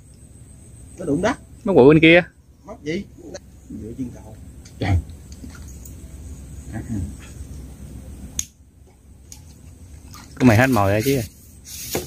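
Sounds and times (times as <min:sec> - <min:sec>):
sharp click: 0:08.4 - 0:08.6.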